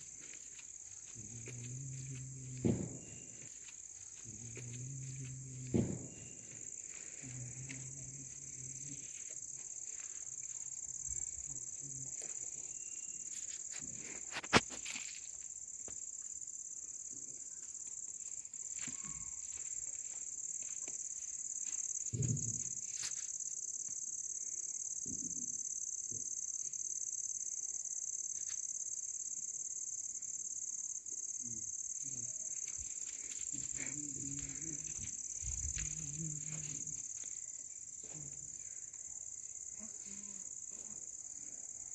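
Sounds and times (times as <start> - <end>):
crickets chirring: 0.0 - 41.9.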